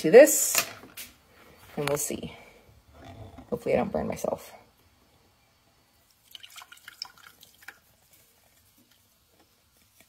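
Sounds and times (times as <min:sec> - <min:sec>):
oil pouring through strainer: 0:06.0 - 0:09.2
faint dripping: 0:06.0 - 0:10.0.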